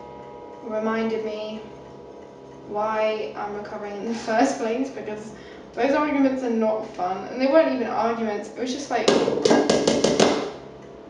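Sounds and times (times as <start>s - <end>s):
spoon tapping a mixing bowl: 9.1s - 10.3s.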